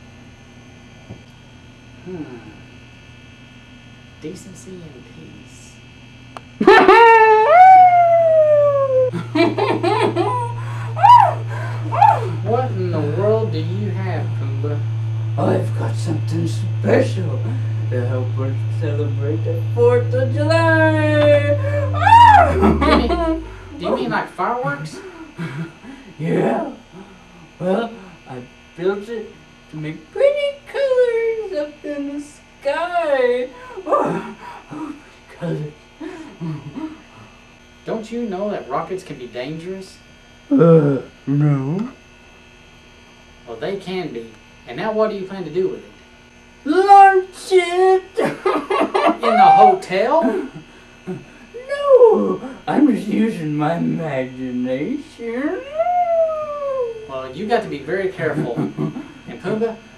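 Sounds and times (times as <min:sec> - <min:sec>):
low electrical hum: 0:00.0 - 0:59.9
person speaking in cartoon voice: 0:19.7 - 0:24.9, 0:49.2 - 0:49.8
cartoonish puppet vocal call: 0:49.2 - 0:49.8.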